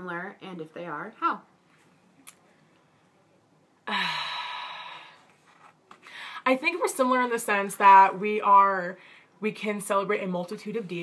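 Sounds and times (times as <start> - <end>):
woman sighing: 3.8 - 5.2.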